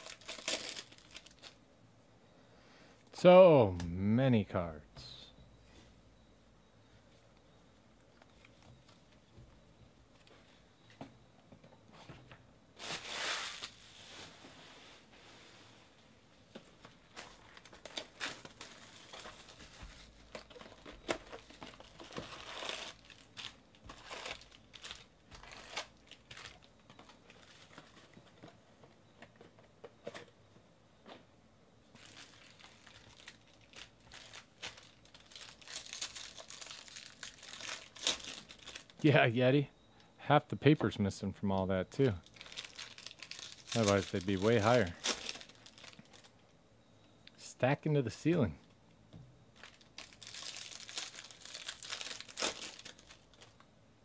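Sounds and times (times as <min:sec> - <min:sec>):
foil packs crinkling and tearing: 0:00.0 - 0:01.6, 0:12.8 - 0:14.1, 0:17.1 - 0:28.2, 0:31.9 - 0:39.2, 0:42.0 - 0:46.4, 0:49.6 - 0:53.6.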